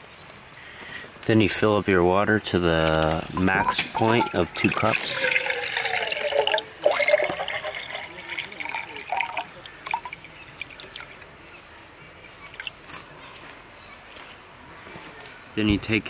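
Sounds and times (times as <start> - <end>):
water pouring into metal cup: 3.4 - 11.4.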